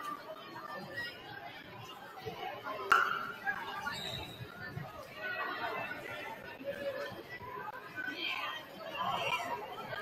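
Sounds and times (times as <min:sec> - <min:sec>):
echoing chatter of many voices: 0:00.0 - 0:10.0.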